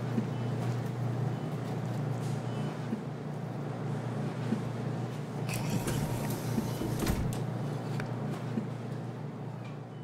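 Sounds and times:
supermarket ambience hum: 0.0 - 10.0.

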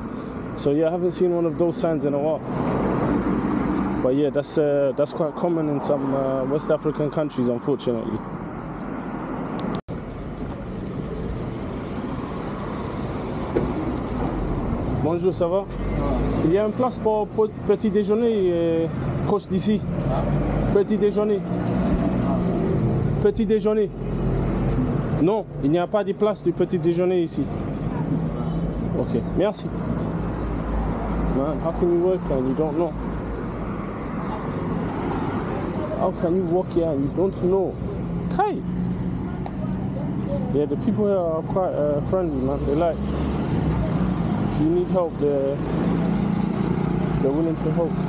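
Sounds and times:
rumble of passing cars: 0.0 - 48.0
people talking: 23.2 - 23.9, 25.2 - 29.7, 39.3 - 43.0, 44.6 - 45.6, 47.2 - 48.0.

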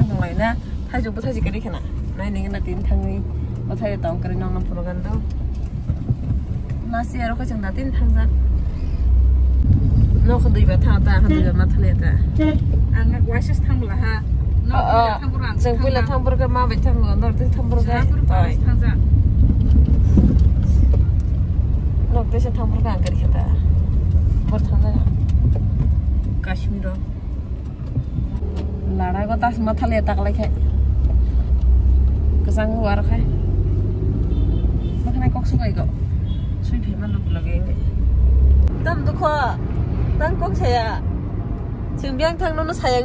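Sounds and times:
steady low rumble: 0.0 - 43.0.

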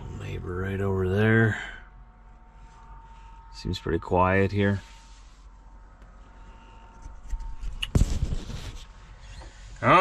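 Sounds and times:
truck cab hum: 0.0 - 10.0.

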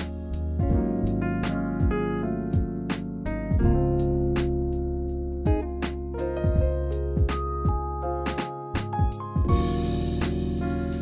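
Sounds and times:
held chords over drum beat: 0.0 - 11.0.

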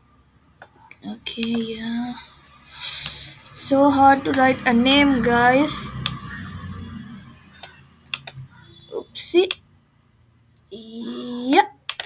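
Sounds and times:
computer mouse clicking: 0.6 - 1.7, 3.0 - 3.2, 4.3 - 4.5, 6.0 - 6.2, 7.6 - 8.4, 11.5 - 12.0.

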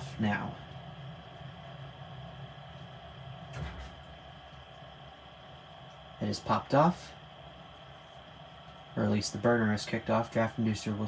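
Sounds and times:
furnace humming: 0.0 - 11.0.

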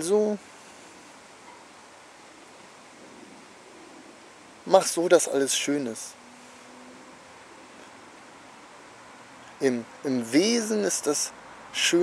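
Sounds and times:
outdoor ambience hiss: 0.0 - 12.0.

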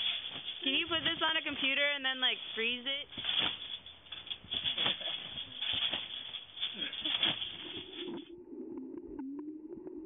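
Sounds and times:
trampoline rattling and thumping: 0.0 - 8.3.

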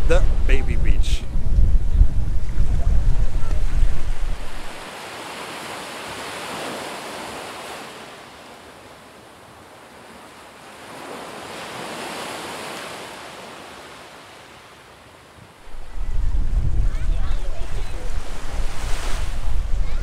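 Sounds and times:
ocean waves washing on beach: 0.0 - 20.0.

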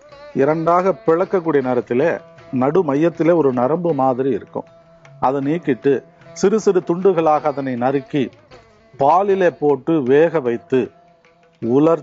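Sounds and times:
faint background music: 0.0 - 12.0
man speaking: 0.4 - 8.4, 9.0 - 10.9, 11.6 - 12.0.

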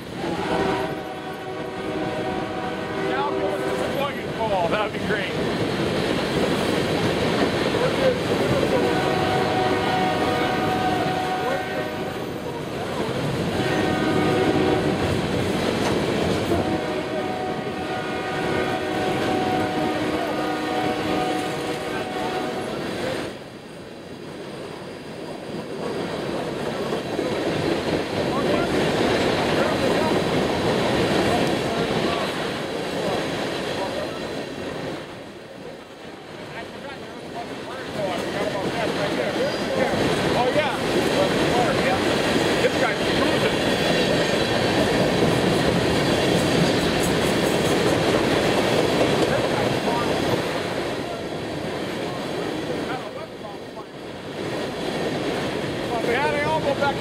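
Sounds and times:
train horn blasts: 0.2 - 4.0, 8.8 - 12.4, 13.5 - 15.2, 16.4 - 22.8.

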